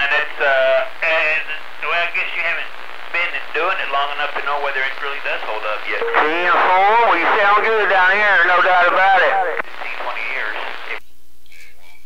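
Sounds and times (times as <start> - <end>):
voices through radio receiver: 0.0 - 11.0.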